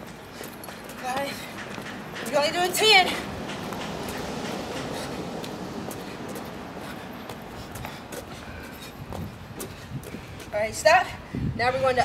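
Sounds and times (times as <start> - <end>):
steady rushing noise: 0.0 - 11.8
sneakers tapping on concrete: 4.8 - 10.6.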